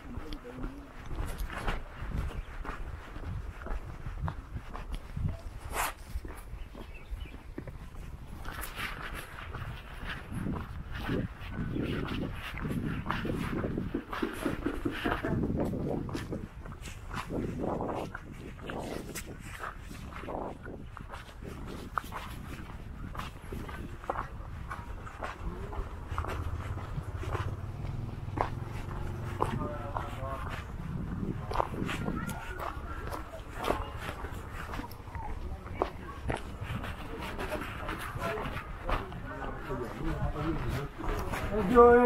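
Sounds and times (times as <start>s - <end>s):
faint voices of people: 0.0s - 42.0s
footsteps crunching on dirt: 0.0s - 42.0s
low rumble: 25.4s - 31.8s.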